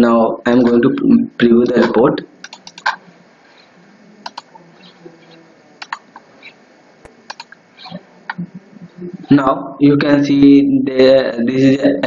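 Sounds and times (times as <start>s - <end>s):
faint background hiss: 0.0s - 12.0s
computer mouse clicks: 1.8s - 3.0s, 4.2s - 4.5s, 5.8s - 7.6s.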